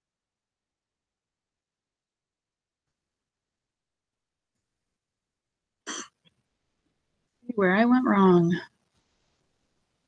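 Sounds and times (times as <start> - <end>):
woman coughing: 5.9 - 6.2.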